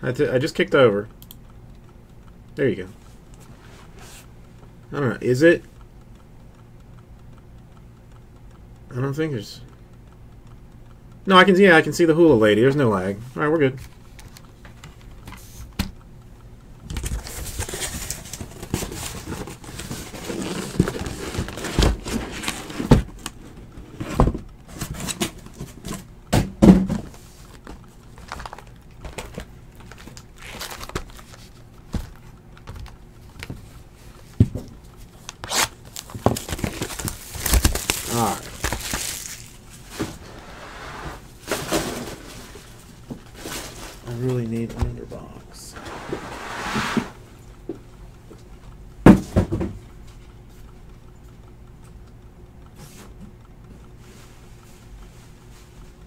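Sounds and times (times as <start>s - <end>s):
plastic wrap crinkling: 28.1s - 32.1s, 35.2s - 39.9s
objects knocking on a desk: 49.1s - 49.8s.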